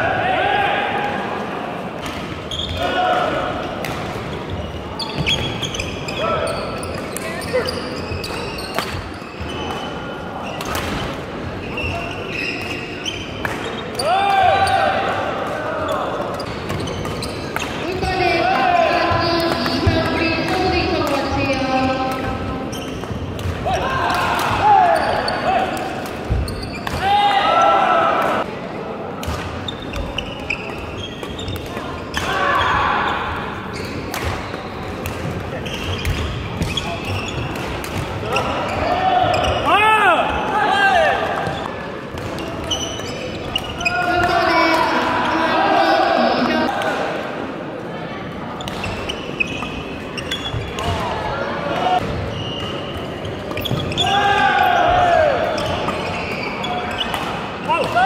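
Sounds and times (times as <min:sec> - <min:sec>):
players' voices: 0:00.0 - 0:58.0
sneakers squeaking on floor: 0:02.0 - 0:15.0, 0:15.7 - 0:23.8, 0:24.6 - 0:27.8, 0:29.4 - 0:45.4, 0:48.6 - 0:58.0.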